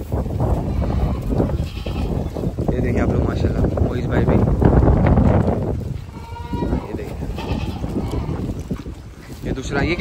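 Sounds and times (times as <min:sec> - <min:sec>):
goat bleating: 0:00.5 - 0:02.6, 0:06.0 - 0:08.8.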